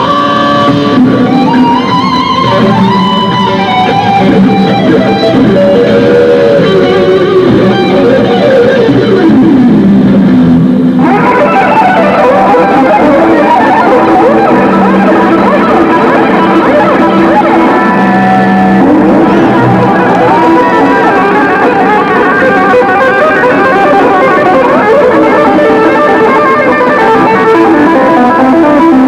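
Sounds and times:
electric guitar chords: 0.0s - 29.0s
electric guitar lead line: 0.0s - 29.0s.

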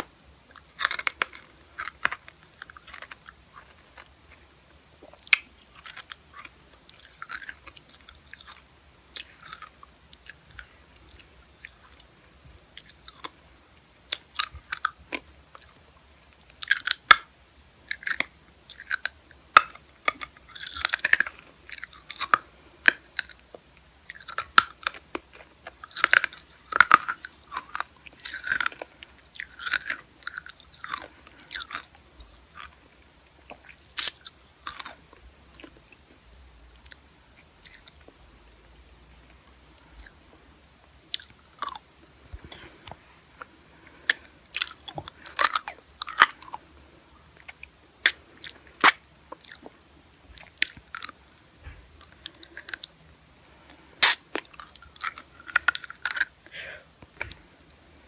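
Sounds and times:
wet mouth smacks and clicks: 54.0s - 54.5s.

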